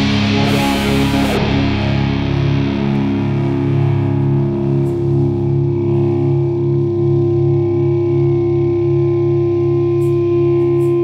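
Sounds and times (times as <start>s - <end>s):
instrumental rock music: 0.0s - 11.0s.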